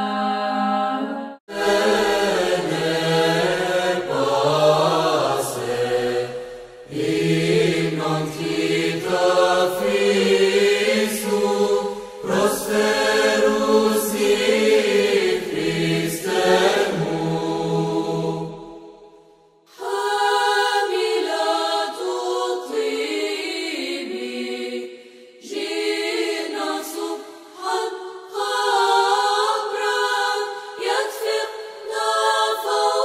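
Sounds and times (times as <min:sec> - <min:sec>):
voices chanting: 0:00.0 - 0:18.5.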